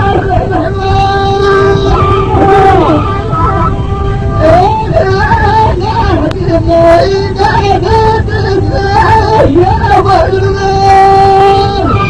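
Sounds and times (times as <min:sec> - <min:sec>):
recording hiss and rumble: 0:00.0 - 0:12.0
reed flute melody: 0:01.2 - 0:06.2, 0:11.0 - 0:12.0.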